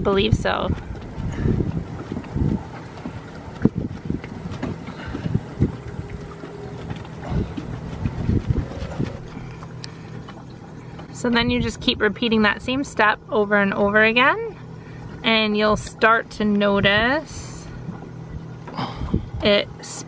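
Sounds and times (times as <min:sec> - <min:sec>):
wind buffeting microphone: 0:00.0 - 0:10.5, 0:11.2 - 0:13.1, 0:13.7 - 0:19.6.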